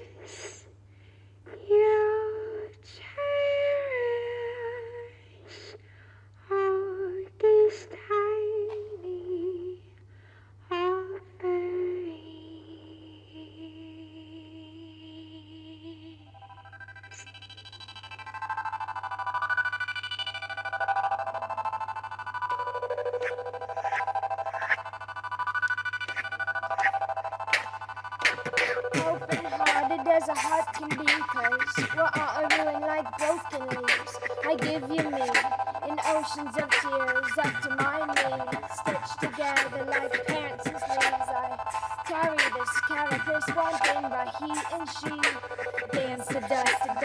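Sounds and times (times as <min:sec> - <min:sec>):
pulsing electronic chord: 0:16.2 - 0:47.0
woman humming: 0:27.5 - 0:47.0.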